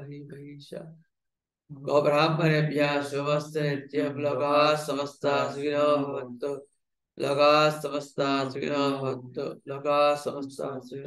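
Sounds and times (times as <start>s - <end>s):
man chanting a prayer: 1.7s - 6.6s, 7.2s - 11.0s.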